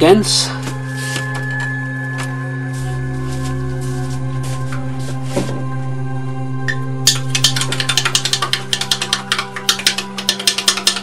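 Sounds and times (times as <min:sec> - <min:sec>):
background music with drone: 0:00.0 - 0:11.0
fast sharp clicks: 0:07.1 - 0:11.0.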